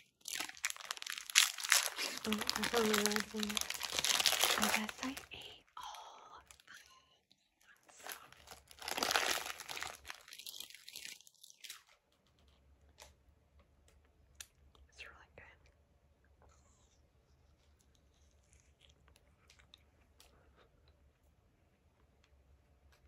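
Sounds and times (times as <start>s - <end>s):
paper wrapper crinkling: 0.0s - 5.6s, 8.0s - 12.0s.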